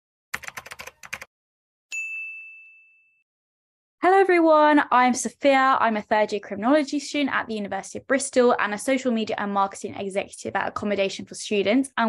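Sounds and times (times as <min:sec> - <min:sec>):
typing clicks: 0:00.4 - 0:01.3
bell ding: 0:01.9 - 0:03.2.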